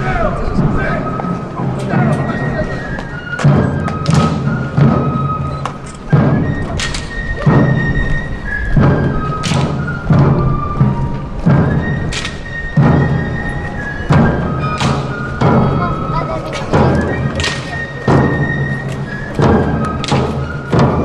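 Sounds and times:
marching drums thumping: 0.0s - 21.0s
wind instruments holding high notes: 0.0s - 21.0s.

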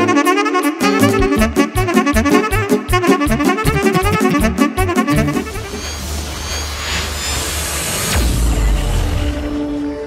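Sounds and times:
whoosh with falling pitch sweep: 4.5s - 10.0s.

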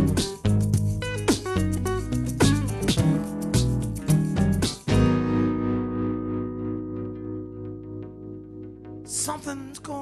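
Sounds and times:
guitar strumming: 0.0s - 10.0s
guitar chord ringing: 3.0s - 9.7s.

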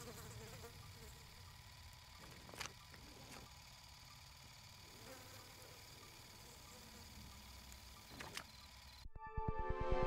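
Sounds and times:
faint insect-like buzz: 0.0s - 9.1s.

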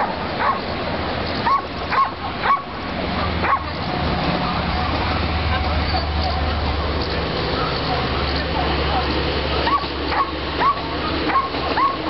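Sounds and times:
dog barking: 0.0s - 0.6s, 1.4s - 3.8s, 8.9s - 12.0s.

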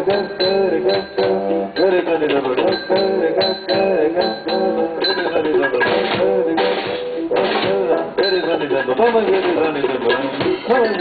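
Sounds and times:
keyboard: 0.0s - 11.0s
percussion: 0.0s - 11.0s
slide guitar melody: 0.0s - 11.0s.

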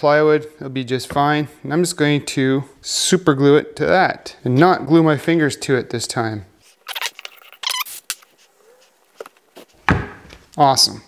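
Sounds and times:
glue bottle squeaks: 6.8s - 9.0s.

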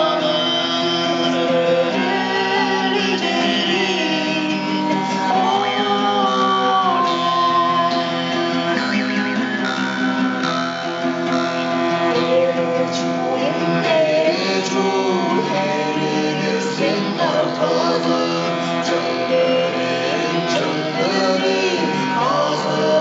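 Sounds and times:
gliding melody line: 0.0s - 23.0s
jaw harp: 0.0s - 23.0s
long-necked lute: 0.0s - 23.0s
person singing: 0.0s - 23.0s
steady drone: 0.0s - 23.0s.

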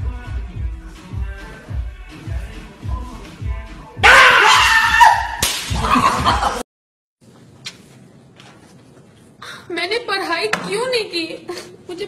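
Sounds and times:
music with steady beat: 0.0s - 4.1s.

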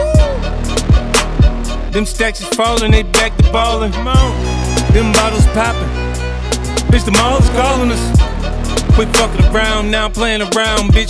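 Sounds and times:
deep bass drum hits: 0.2s - 1.8s, 4.2s - 9.6s
sustained bass note: 2.9s - 9.7s.

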